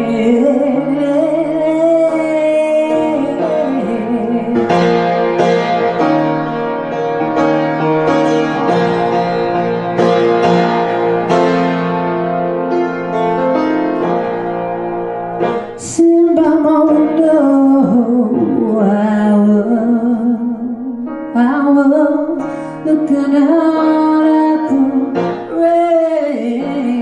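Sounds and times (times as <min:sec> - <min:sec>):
slow blues piano: 0:00.0 - 0:27.0.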